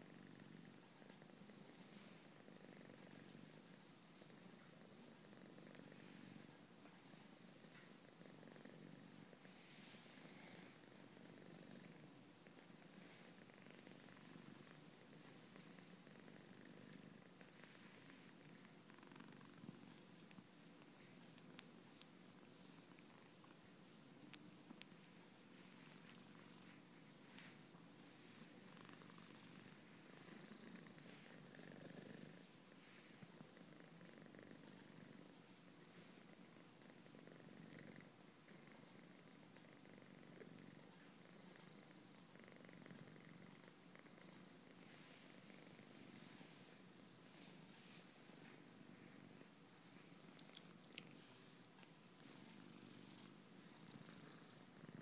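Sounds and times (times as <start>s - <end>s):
cat purring: 0.0s - 55.0s.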